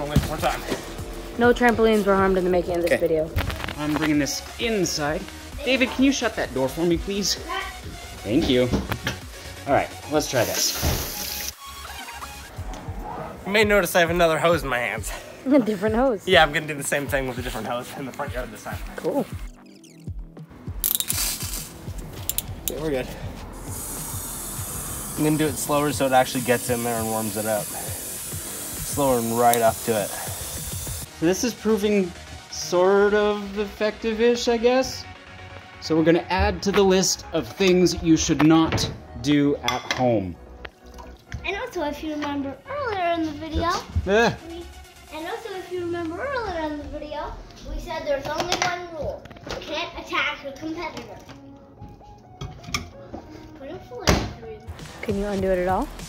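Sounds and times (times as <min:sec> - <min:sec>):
soft background music: 0:00.0 - 0:56.0
hose nozzle water spraying: 0:10.3 - 0:12.4, 0:20.8 - 0:22.8, 0:23.6 - 0:31.1.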